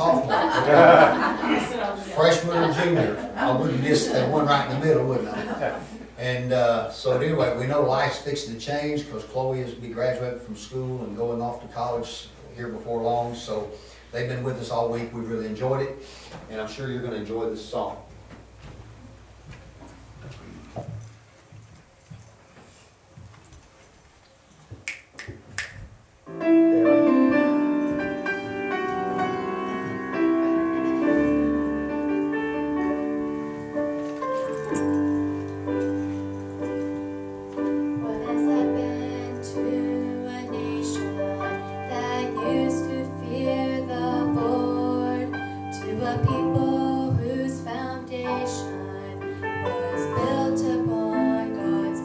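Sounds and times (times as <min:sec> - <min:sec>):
piano accompaniment: 0:00.0 - 0:01.8, 0:26.2 - 0:52.0
woman singing gospel: 0:38.0 - 0:52.0.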